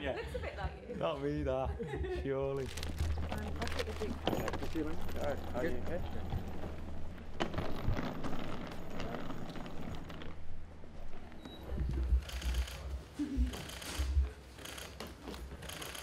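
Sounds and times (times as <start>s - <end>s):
suitcase wheels rolling: 2.6s - 12.8s.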